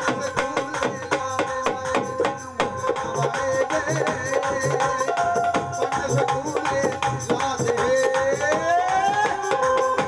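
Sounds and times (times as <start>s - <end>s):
hand drums beating: 0.0s - 10.0s.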